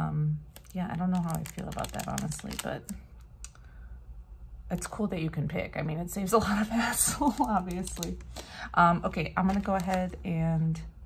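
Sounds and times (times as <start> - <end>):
person speaking: 0.4 - 3.0, 4.7 - 10.8
cellophane wrapping clicks: 0.5 - 3.6, 7.3 - 8.4.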